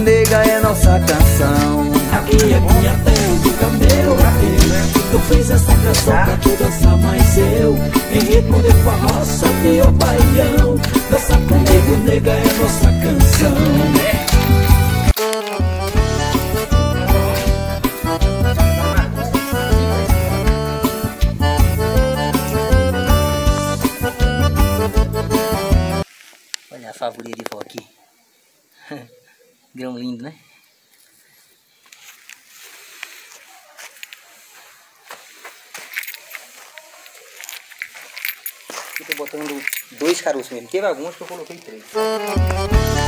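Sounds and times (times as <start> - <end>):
shoes crunching on dry soil: 0.0 - 18.4, 25.4 - 27.8, 31.0 - 43.0
accordion over a steady beat: 0.0 - 26.1, 41.0 - 43.0
man speaking: 39.0 - 42.2.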